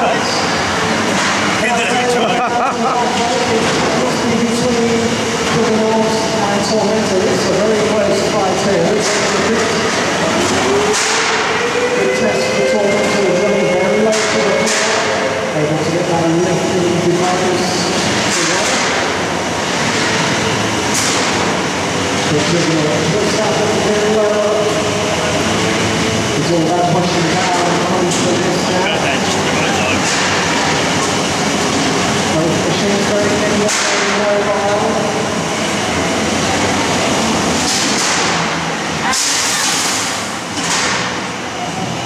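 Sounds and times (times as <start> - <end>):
crowd chatter: 0.0 - 18.8, 21.8 - 37.6
electric motors whining: 10.0 - 16.4, 25.2 - 32.4.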